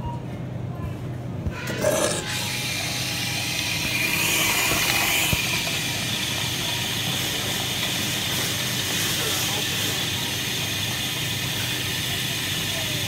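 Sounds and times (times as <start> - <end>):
coffee machine whirring: 1.5 - 13.0.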